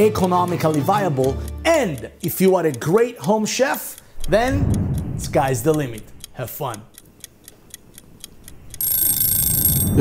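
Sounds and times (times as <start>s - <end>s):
clock ticking: 0.0s - 10.0s
high-pitched bell ringing: 8.8s - 10.0s.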